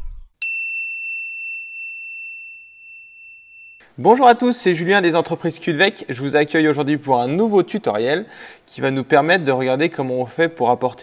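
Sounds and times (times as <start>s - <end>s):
bright bell ding: 0.4s - 3.9s.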